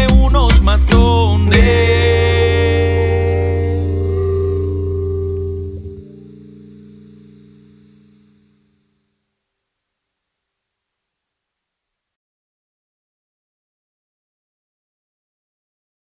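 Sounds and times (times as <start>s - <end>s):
bass guitar: 0.0s - 8.2s
electric guitar chord ringing: 0.9s - 9.2s.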